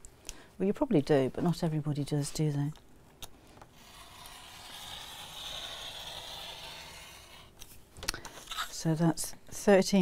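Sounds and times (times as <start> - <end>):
rotary cutter slicing fabric: 3.8 - 7.6.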